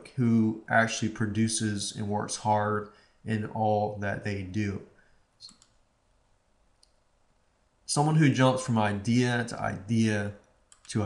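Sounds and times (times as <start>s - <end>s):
computer mouse clicking: 5.4s - 5.8s, 10.4s - 11.0s.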